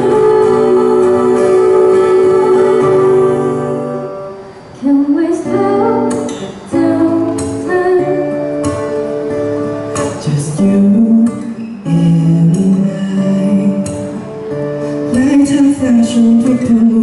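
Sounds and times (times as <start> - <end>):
man singing: 0.0 - 4.1, 10.1 - 14.3, 15.1 - 17.0
woman singing: 0.0 - 4.2, 4.8 - 8.4
acoustic guitar: 0.0 - 17.0.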